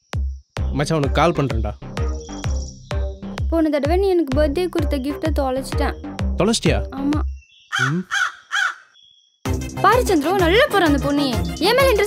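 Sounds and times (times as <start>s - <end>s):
crow cawing: 7.7s - 9.0s.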